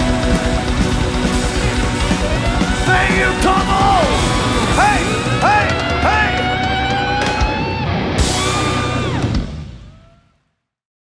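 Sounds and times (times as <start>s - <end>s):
man singing: 0.0s - 6.6s
live rock band playing: 0.0s - 9.9s.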